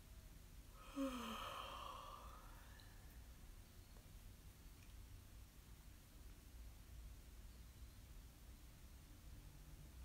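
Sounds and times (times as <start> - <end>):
woman yawning: 0.8 - 2.5.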